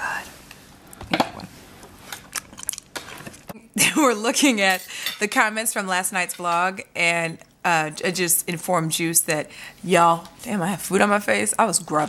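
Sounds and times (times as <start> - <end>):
person laughing: 3.6 - 4.2.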